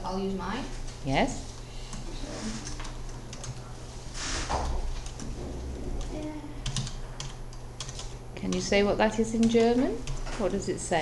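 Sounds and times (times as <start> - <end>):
typing on computer keyboard: 2.6 - 3.6, 6.6 - 8.7, 9.3 - 10.2.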